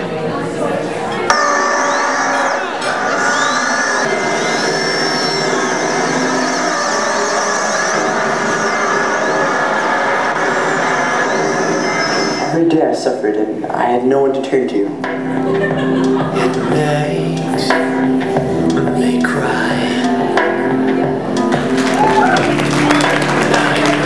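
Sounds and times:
ambient drone: 1.3s - 12.6s.

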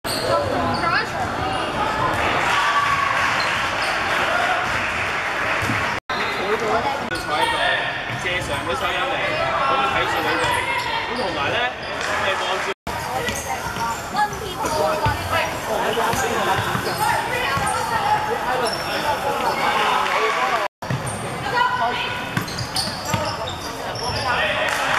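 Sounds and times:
hubbub of voices and calls: 0.1s - 24.9s
basketballs bouncing on floor: 13.1s - 15.4s, 20.8s - 21.6s.

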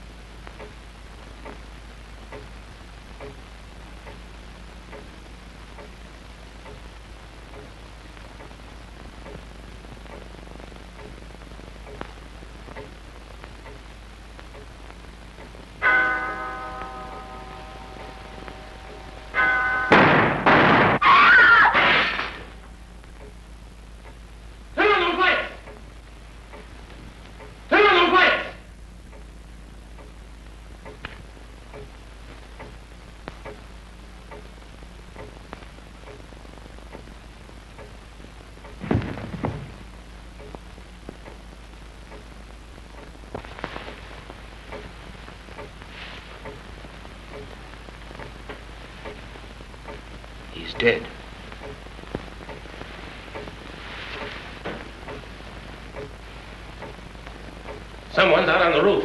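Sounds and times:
faint regular ticking: 0.0s - 19.9s, 22.5s - 24.8s, 25.6s - 27.7s, 28.7s - 38.8s, 39.7s - 58.9s
film soundtrack hiss and crackle: 0.0s - 59.0s
sharp click: 3.2s - 3.4s
gunshot: 19.9s - 21.0s, 21.7s - 22.4s, 38.8s - 39.7s.

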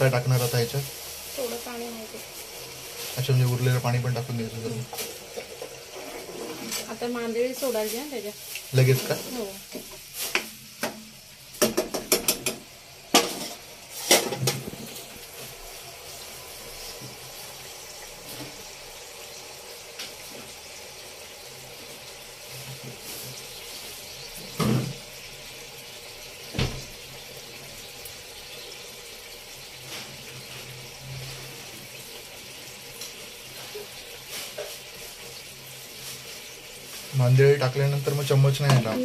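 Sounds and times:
steady watery hiss: 0.0s - 39.0s.

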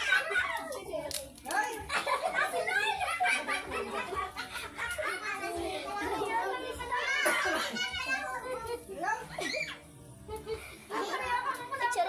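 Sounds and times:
people chattering and calling out: 0.0s - 12.0s
hand claps: 0.4s - 1.9s.

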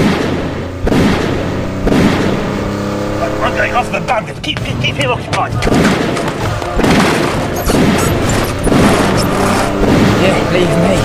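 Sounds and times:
continuous rumble: 0.0s - 11.0s.

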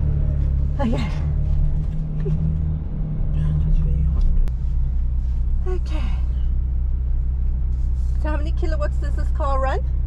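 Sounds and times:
car engine droning at low revs: 0.0s - 10.0s.

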